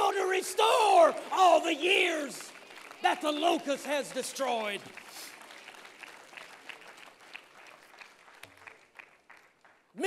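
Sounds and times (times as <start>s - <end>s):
faint scattered applause: 0.0s - 10.0s.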